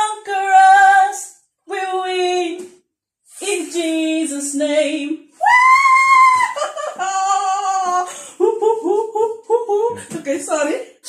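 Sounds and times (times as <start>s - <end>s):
high-pitched laughter: 6.3s - 8.0s.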